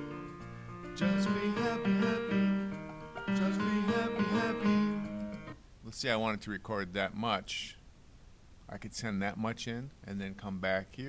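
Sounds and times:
choir singing sustained chords: 1.0 - 5.3.

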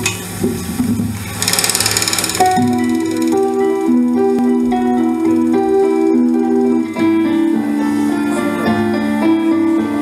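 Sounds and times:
fast drum roll: 0.3 - 4.1
sustained bass and guitar notes: 1.9 - 10.0.

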